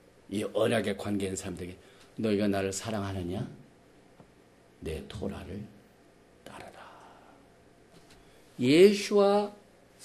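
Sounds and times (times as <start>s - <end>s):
man breathing softly: 6.8s - 8.6s.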